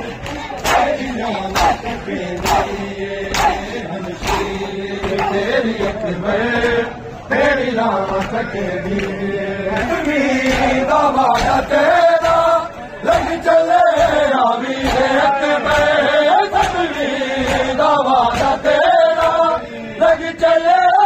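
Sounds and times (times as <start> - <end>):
men chanting in unison: 0.0 - 21.0
chest-beating slaps: 0.2 - 6.0.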